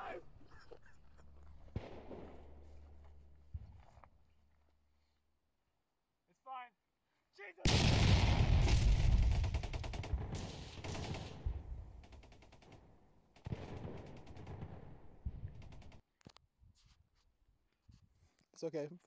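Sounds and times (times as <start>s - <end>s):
automatic gunfire: 7.7s - 16.0s.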